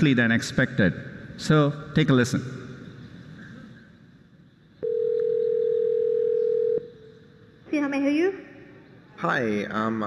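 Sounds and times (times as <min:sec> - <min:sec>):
telephone ringback tone: 0:04.8 - 0:06.8.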